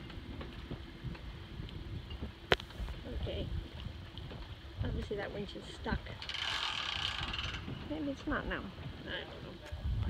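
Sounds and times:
winch ratchet clicking: 6.2s - 7.7s.

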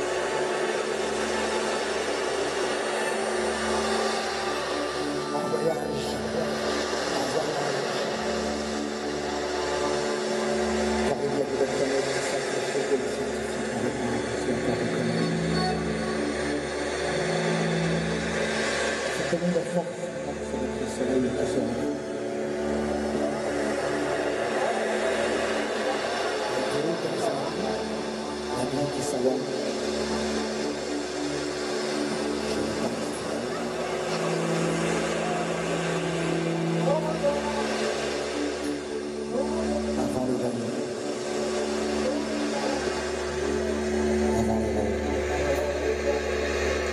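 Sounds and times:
band playing droning noise: 0.0s - 46.9s
deep bass drone: 0.0s - 46.9s
lower held note: 0.0s - 46.9s
pulsing note: 0.0s - 46.9s.

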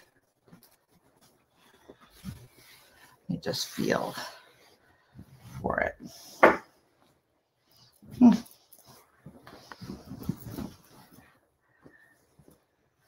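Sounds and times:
heavy quilt rustling: 0.0s - 13.0s.

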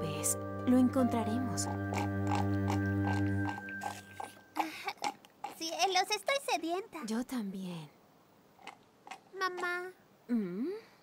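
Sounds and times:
music chord with low drone: 0.0s - 4.2s
biting and chewing: 1.6s - 6.1s, 8.6s - 9.8s.

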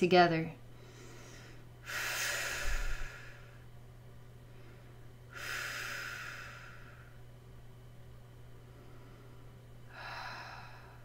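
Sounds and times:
woman breathing deeply: 0.7s - 3.7s, 4.3s - 7.3s, 8.5s - 11.0s.

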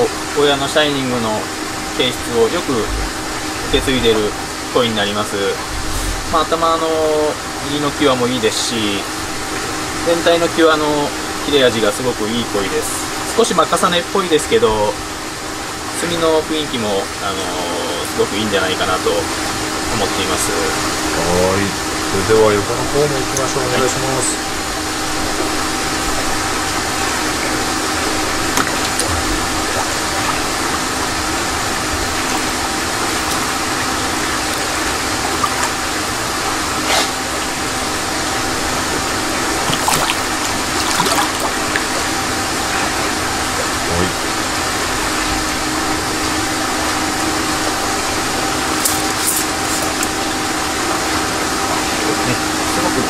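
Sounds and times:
steady machine hum: 0.0s - 53.0s
water sloshing and splashing: 22.8s - 53.0s.

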